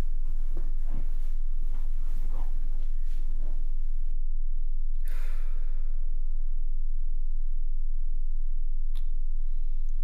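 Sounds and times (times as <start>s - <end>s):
steady low hum: 0.0s - 10.0s
man sighing in sleep: 5.1s - 5.9s.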